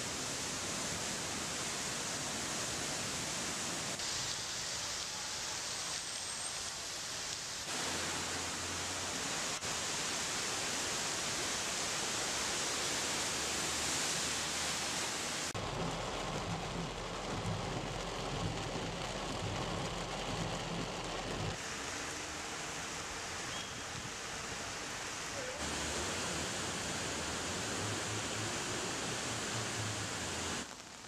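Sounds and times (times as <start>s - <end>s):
rushing floodwater: 0.0s - 30.7s
heavy rain: 0.0s - 31.0s
low rumble: 15.6s - 21.6s.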